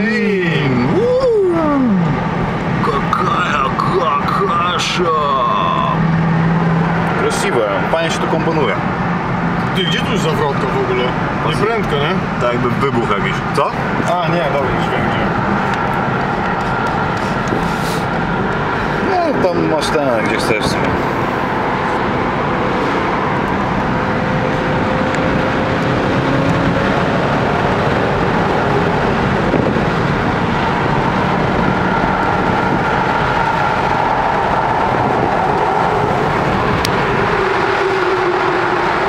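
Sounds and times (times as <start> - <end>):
car engine and tyre noise: 0.0 - 39.0.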